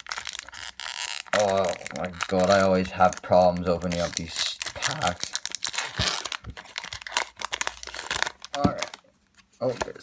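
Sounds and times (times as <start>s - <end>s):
foil wrapper crinkling and tearing: 0.0s - 9.0s.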